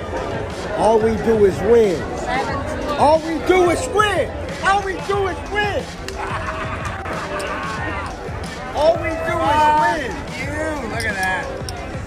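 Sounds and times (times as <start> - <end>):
low thumping beat: 2.8 - 12.0.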